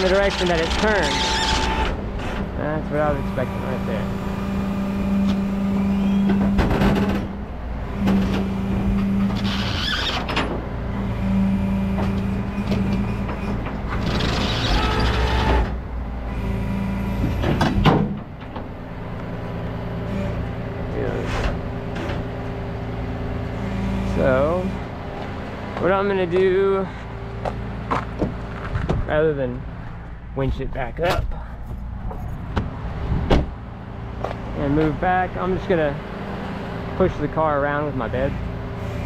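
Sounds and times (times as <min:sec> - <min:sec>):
tow truck hydraulics hum: 0:00.0 - 0:29.1, 0:31.2 - 0:39.0.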